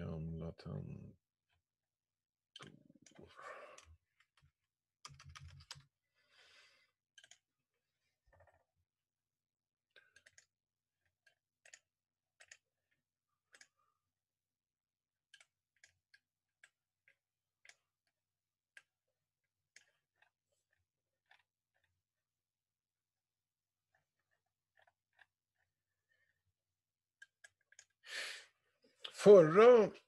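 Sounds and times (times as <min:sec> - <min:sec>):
keyboard and mouse clicks: 0:02.6 - 0:05.9, 0:07.2 - 0:07.5, 0:10.0 - 0:10.5, 0:11.2 - 0:12.6
computer keyboard typing: 0:05.0 - 0:05.9.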